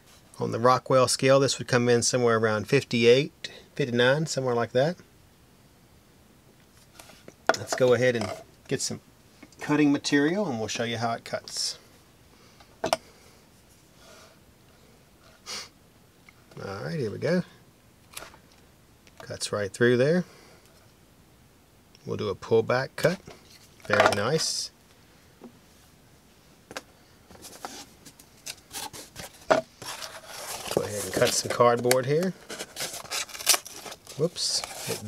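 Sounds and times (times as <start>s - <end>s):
person sniffing: 15.3s - 15.8s.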